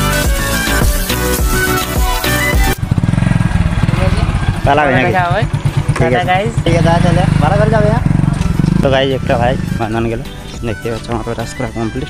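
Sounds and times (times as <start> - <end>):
background music: 0.0 - 2.9, 4.5 - 12.0
motorcycle engine running: 2.0 - 10.7.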